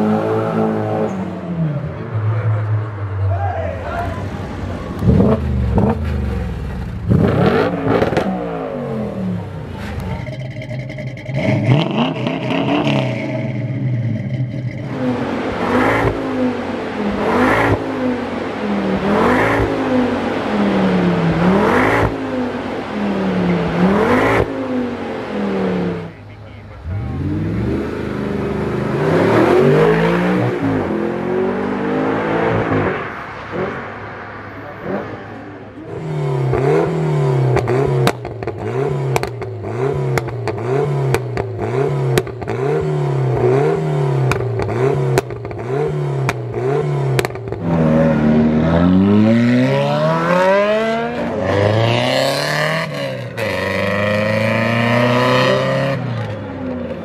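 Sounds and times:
car engines revving: 0.0 - 57.0
car accelerating hard: 4.2 - 26.2, 26.8 - 57.0
car exhaust blipping: 5.0 - 20.0, 36.3 - 55.2.

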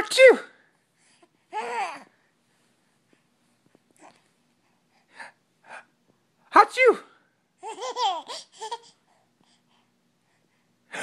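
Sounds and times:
baby laughing: 7.6 - 9.0.

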